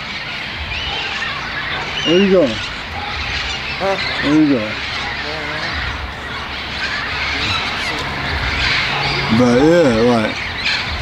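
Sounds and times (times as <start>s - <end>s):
birds calling: 0.0s - 11.0s
outdoor background hiss: 0.0s - 11.0s.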